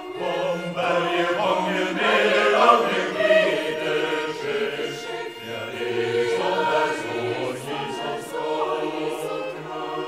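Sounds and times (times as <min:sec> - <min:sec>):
choir singing: 0:00.0 - 0:10.0.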